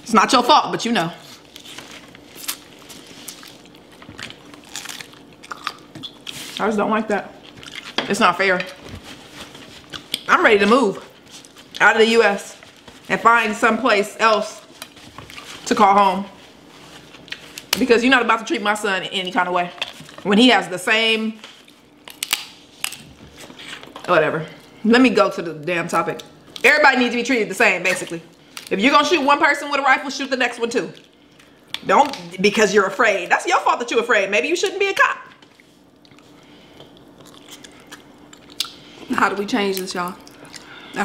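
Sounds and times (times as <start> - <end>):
person chewing crisp food: 1.2 - 6.6, 7.4 - 8.0, 35.4 - 38.8
crab shell cracking: 3.4 - 6.2, 22.0 - 23.0.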